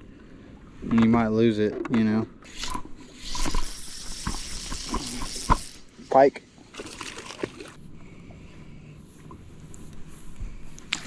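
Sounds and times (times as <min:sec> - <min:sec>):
water lapping against boat hull: 0:00.0 - 0:11.0.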